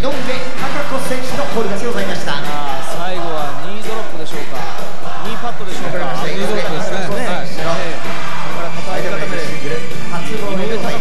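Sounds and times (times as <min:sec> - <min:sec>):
background music: 0:00.0 - 0:11.0
person speaking: 0:00.0 - 0:11.0.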